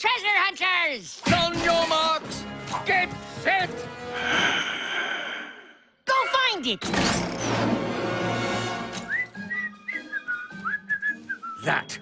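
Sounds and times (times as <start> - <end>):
person whistling a tune: 9.0 - 12.0.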